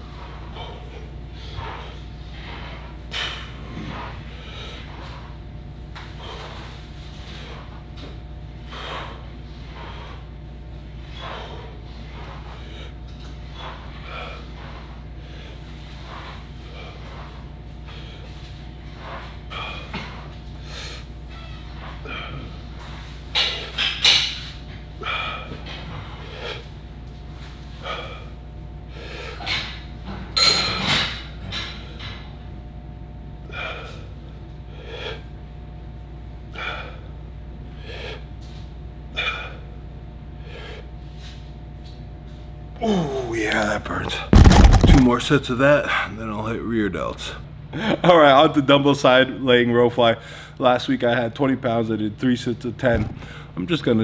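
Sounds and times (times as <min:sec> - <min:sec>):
steady low hum: 0:00.0 - 0:54.0
man breathing hard: 0:00.4 - 0:05.3, 0:08.7 - 0:10.4, 0:11.0 - 0:18.5, 0:19.5 - 0:21.1, 0:25.0 - 0:26.8, 0:27.7 - 0:29.8, 0:33.4 - 0:35.4, 0:36.5 - 0:39.8, 0:40.4 - 0:41.4, 0:50.2 - 0:50.6, 0:53.2 - 0:53.6.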